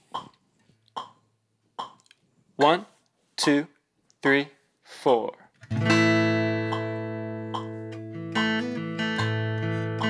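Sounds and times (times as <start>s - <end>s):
guitar playing: 5.6s - 10.0s.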